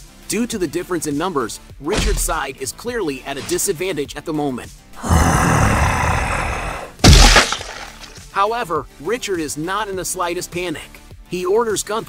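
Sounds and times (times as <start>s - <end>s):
monster roar: 5.0s - 8.1s.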